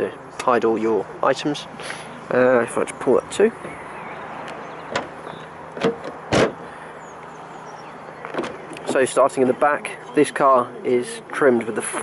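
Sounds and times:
car door shutting: 4.8 - 6.7, 8.2 - 8.6.

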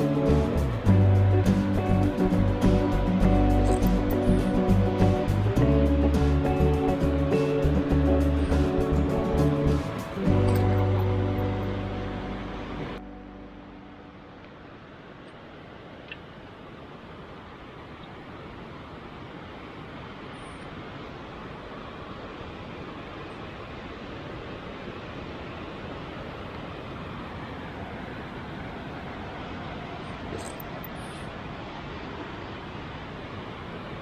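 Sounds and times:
rushing background noise: 0.0 - 34.0.

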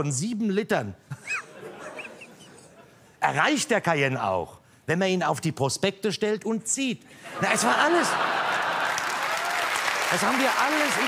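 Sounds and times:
audience laughing: 1.2 - 3.0, 7.2 - 9.5
audience clapping: 7.9 - 11.0.

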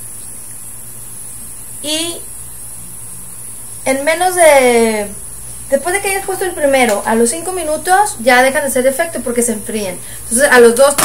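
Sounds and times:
low electrical hum: 0.0 - 11.0
woman speaking: 1.8 - 2.3, 3.8 - 11.0.

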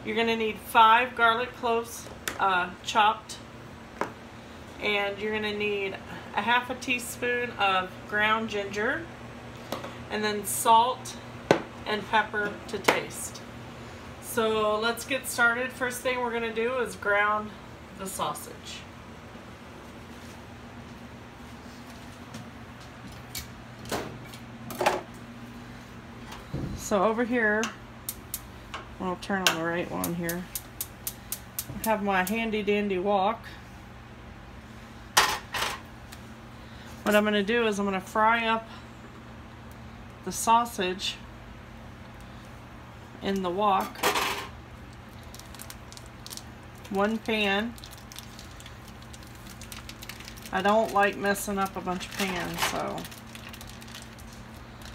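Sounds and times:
steady low hum: 0.0 - 54.9
plastic wrapper crinkling: 44.9 - 54.9
sausage squishing: 45.0 - 54.9.

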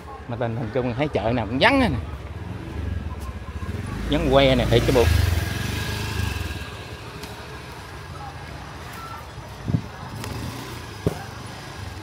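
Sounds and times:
motor scooter engine running: 3.6 - 7.0.

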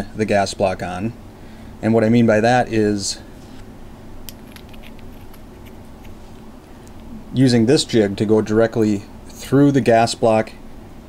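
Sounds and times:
low room hum: 0.0 - 11.0
small metal parts clicking: 4.3 - 6.2.

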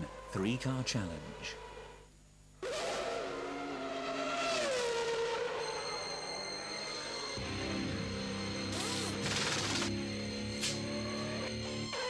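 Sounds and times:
racing car engine passing: 2.7 - 8.2
theme music: 5.5 - 10.4.

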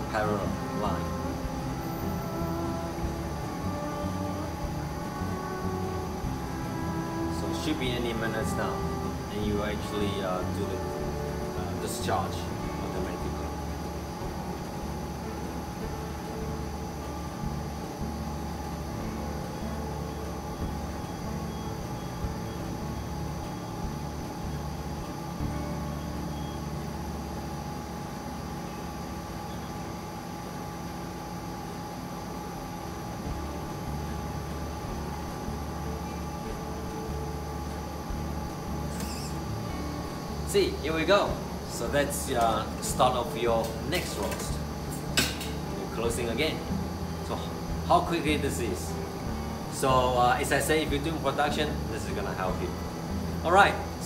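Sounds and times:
coffee roaster humming: 0.0 - 54.0.

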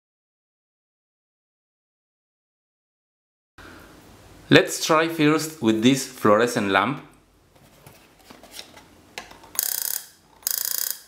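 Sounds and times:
quiet handling noise: 7.0 - 9.6.

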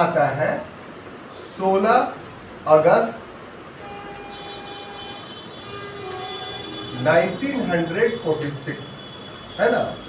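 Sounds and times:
distant horn sounding: 3.8 - 10.0.

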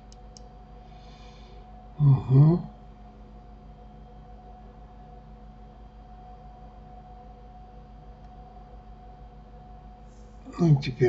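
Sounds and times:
faint constant tones: 0.0 - 11.0
steady background hum: 0.0 - 11.0.

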